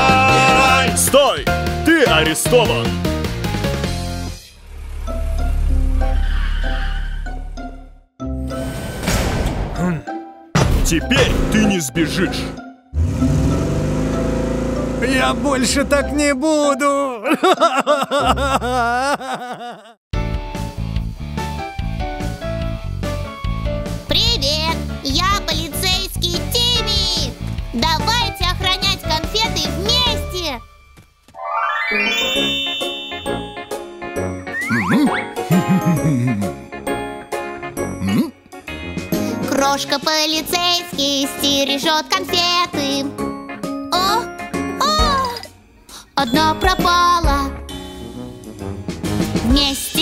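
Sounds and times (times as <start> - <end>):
children's cartoon music: 0.0 - 4.5, 9.7 - 19.2, 20.2 - 50.0
cartoon truck engine revving: 3.3 - 8.1, 12.3 - 16.2
comic sliding-pitch sound effects: 31.4 - 33.8, 34.5 - 35.8
tinkling chime notes: 31.4 - 33.9.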